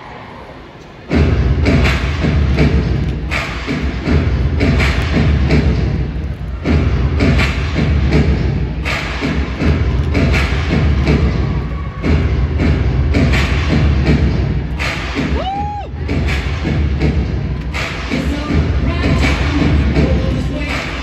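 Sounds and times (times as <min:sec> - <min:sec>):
loud dance music with bass beat: 0:01.1 - 0:21.0.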